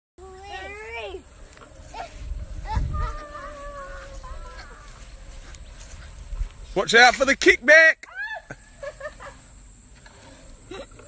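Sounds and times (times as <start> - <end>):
low rumble on microphone: 1.3 - 6.8.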